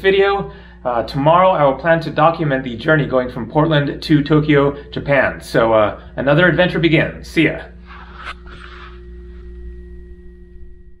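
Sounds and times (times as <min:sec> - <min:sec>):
faint held pitched tones: 0:00.0 - 0:11.0
low room hum: 0:00.0 - 0:11.0.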